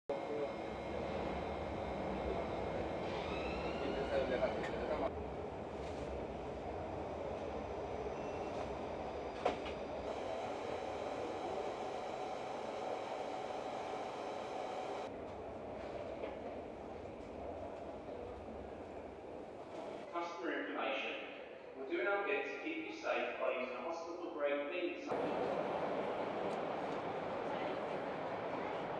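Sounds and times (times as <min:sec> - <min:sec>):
faint rising squeal: 0:00.3 - 0:05.1, 0:07.9 - 0:15.1.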